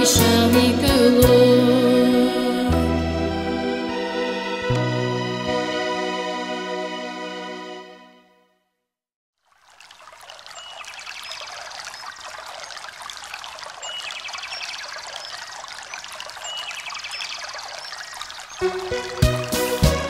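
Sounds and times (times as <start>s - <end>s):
music: 0.0s - 8.8s, 18.6s - 20.0s
running stream: 9.4s - 20.0s.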